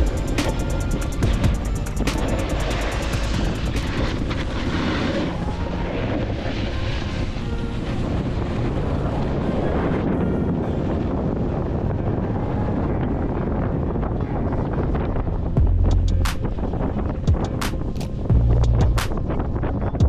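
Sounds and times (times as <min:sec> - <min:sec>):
music: 0:00.0 - 0:20.0
wind buffeting microphone: 0:00.0 - 0:20.0.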